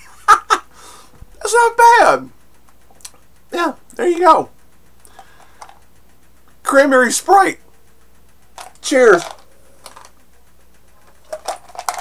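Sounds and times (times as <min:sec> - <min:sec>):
ice clicking in mug: 0:11.2 - 0:12.0.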